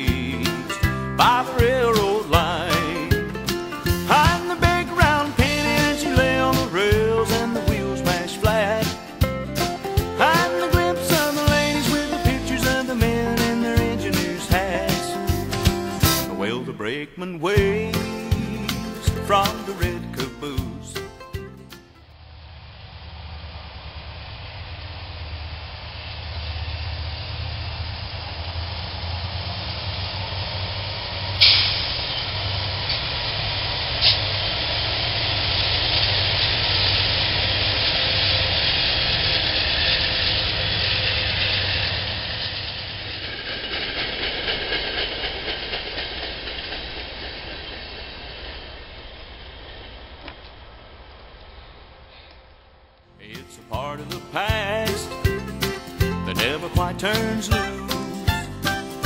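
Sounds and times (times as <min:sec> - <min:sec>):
locomotive engine drone: 0:00.0 - 0:59.0
steel wheel and rail noise: 0:00.0 - 0:59.0
train approaching: 0:00.0 - 0:59.0.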